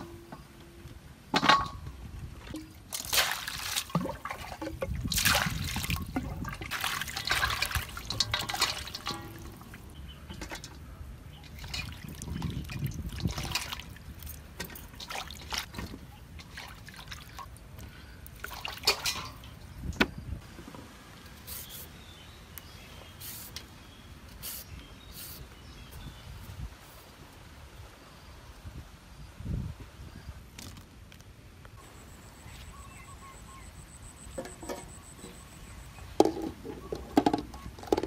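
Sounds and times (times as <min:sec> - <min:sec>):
water sloshing in a steel bowl: 0:01.4 - 0:17.7, 0:18.3 - 0:19.9.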